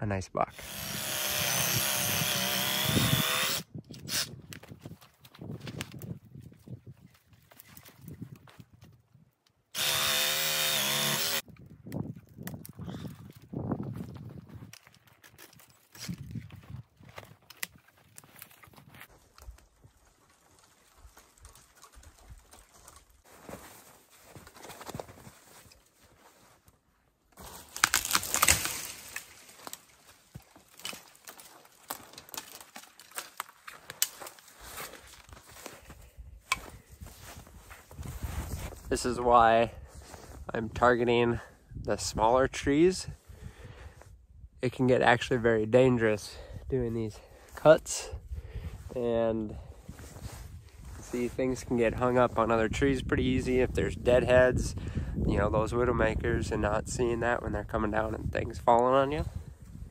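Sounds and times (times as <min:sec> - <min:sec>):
reciprocating saw cutting: 0:00.5 - 0:04.3, 0:09.7 - 0:11.4
branches crackling and rustling: 0:04.6 - 0:39.1
tree snapping through brush: 0:27.4 - 0:35.3.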